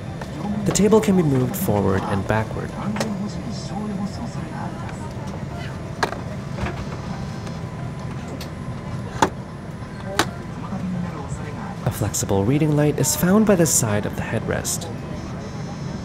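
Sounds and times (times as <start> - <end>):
aircraft cabin hum: 0.0 - 12.1.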